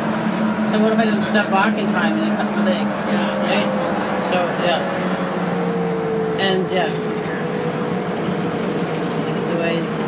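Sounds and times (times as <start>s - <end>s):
bus engine and road drone: 0.0s - 10.0s.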